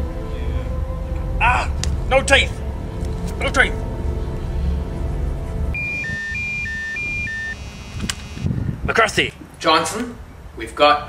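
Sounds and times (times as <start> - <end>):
low background music: 0.0 - 5.8
phone ringing two-tone trill: 5.8 - 8.5.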